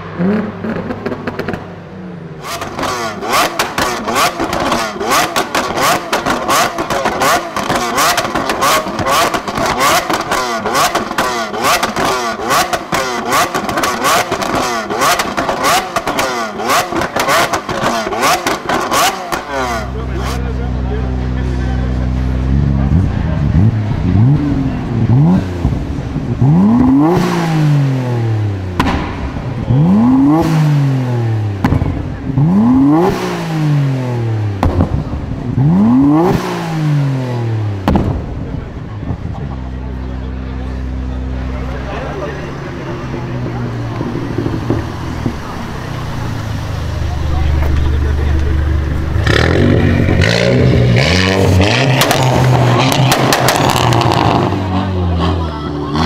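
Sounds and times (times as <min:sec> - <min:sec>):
car engine idling and revving: 0:00.0 - 0:56.0
car exhaust pops and bangs: 0:00.1 - 0:01.7, 0:02.4 - 0:19.8, 0:25.6 - 0:27.4, 0:28.7 - 0:30.8, 0:31.5 - 0:33.4, 0:34.5 - 0:36.7, 0:37.8 - 0:39.4, 0:43.3 - 0:46.0, 0:47.5 - 0:54.5.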